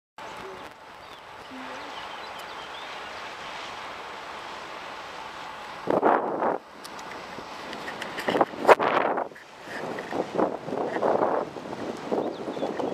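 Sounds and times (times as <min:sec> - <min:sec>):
wind noise on microphone: 0:05.8 - 0:12.9.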